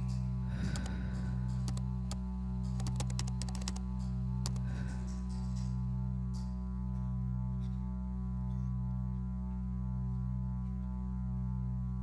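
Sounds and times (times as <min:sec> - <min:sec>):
background music drone: 0:00.0 - 0:12.0
computer keyboard typing clicks: 0:01.6 - 0:03.8, 0:04.4 - 0:04.7.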